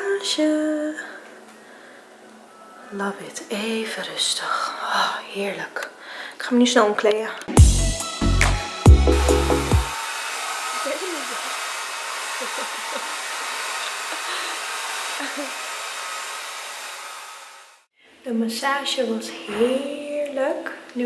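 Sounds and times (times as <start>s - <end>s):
intro jingle with deep bass notes: 7.6s - 9.9s.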